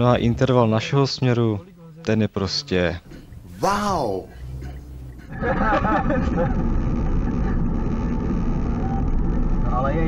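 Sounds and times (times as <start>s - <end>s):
car cabin road and engine rumble: 3.0s - 10.0s.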